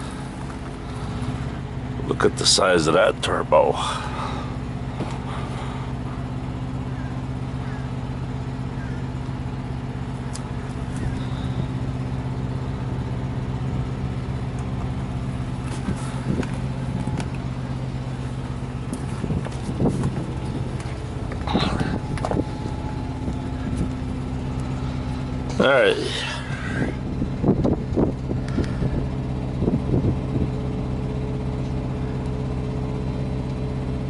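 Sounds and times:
diesel truck engine idling: 0:00.0 - 0:34.0.

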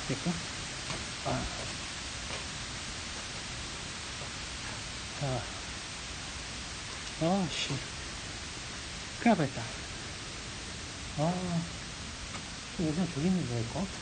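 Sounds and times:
rain hissing in a downpour: 0:00.0 - 0:14.0
man making wordless vocal sounds: 0:01.3 - 0:01.7, 0:11.2 - 0:11.8.

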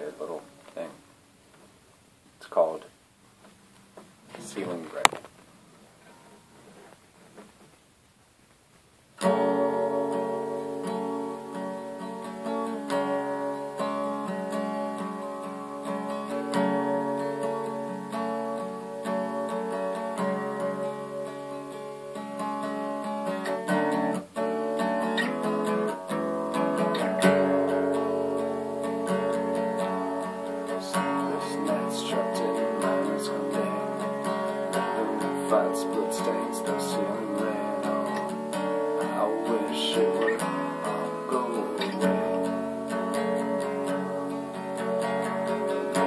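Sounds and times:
acoustic guitar strumming chords: 0:00.0 - 0:01.0, 0:06.0 - 0:07.6, 0:09.2 - 0:46.0.

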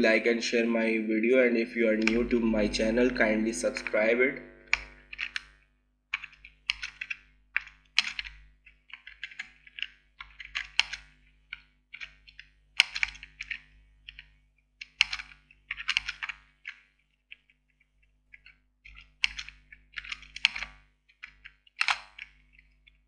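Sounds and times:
typing on computer keyboard: 0:04.7 - 0:05.5, 0:06.2 - 0:14.2, 0:14.8 - 0:17.5, 0:18.4 - 0:23.0.

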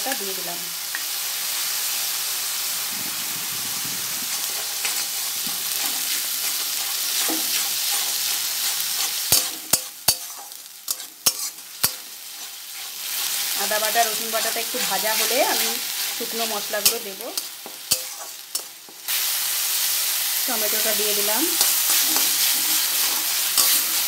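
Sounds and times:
spice paste sizzling in oil: 0:00.0 - 0:24.0
spatula scraping a pan: 0:04.3 - 0:19.0, 0:21.5 - 0:24.0.

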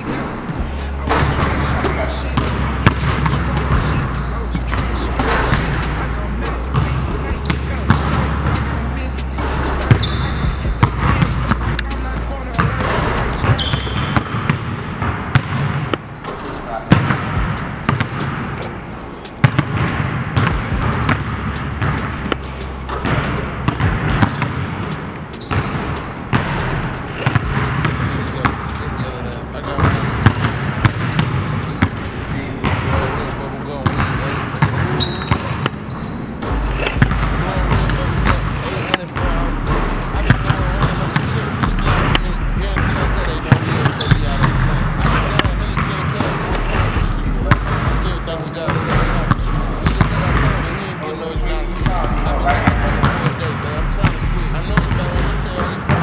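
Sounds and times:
background music with deep bass: 0:00.0 - 0:15.1, 0:17.0 - 0:56.0
basketballs bouncing on wooden floor: 0:00.0 - 0:18.7, 0:19.4 - 0:56.0.

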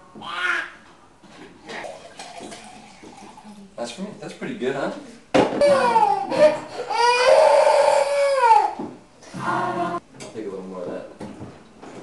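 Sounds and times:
baby crying loudly: 0:05.6 - 0:08.8.

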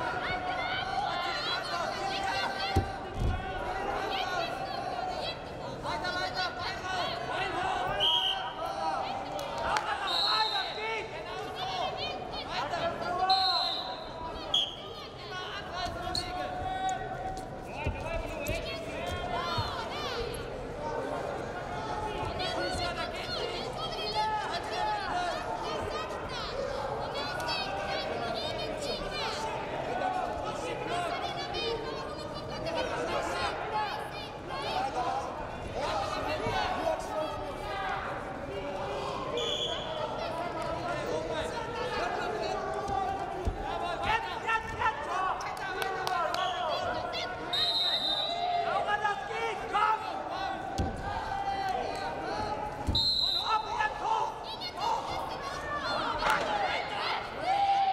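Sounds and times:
voices shouting in a hall: 0:00.0 - 0:57.9
short whistle blasts: 0:39.4 - 0:39.9, 0:47.5 - 0:48.4, 0:52.9 - 0:53.6.

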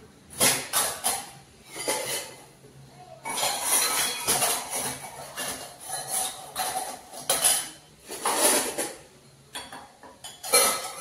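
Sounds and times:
metal utensils clattering: 0:00.3 - 0:02.6, 0:03.2 - 0:11.0.

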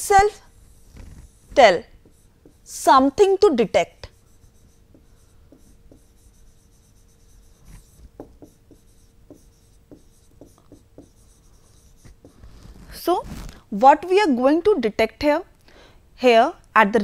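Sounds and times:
faint steady hum: 0:00.0 - 0:17.0
stylus tapping and scratching screen: 0:00.1 - 0:13.6.

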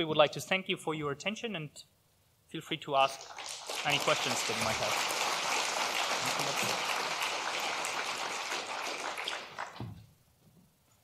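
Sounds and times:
audience applauding: 0:03.2 - 0:09.9.

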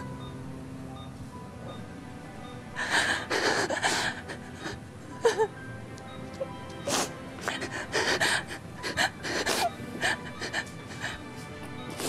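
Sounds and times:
woman sobbing: 0:02.8 - 0:05.6, 0:06.4 - 0:12.0.

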